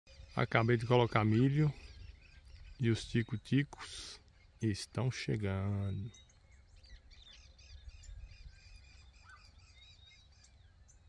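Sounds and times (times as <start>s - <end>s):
songbirds chirping: 0.1s - 11.0s.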